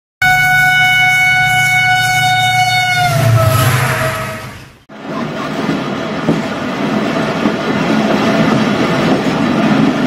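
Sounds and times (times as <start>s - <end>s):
train horn: 0.2s - 4.8s
train rumbling: 0.2s - 10.0s.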